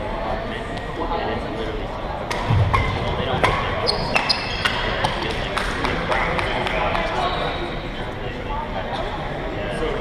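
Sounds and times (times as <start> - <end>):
spectator chatter: 0.0 - 10.0
shoes squeaking on wooden floor: 3.9 - 4.9.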